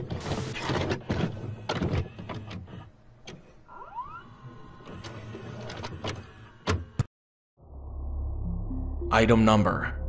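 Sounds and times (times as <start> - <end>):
small motor whirring: 1.0 - 6.7.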